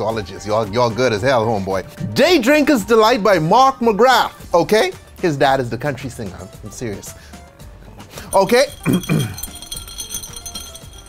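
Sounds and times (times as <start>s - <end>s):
quiet background music: 0.0s - 11.0s
ice clinking in glass: 8.3s - 11.0s.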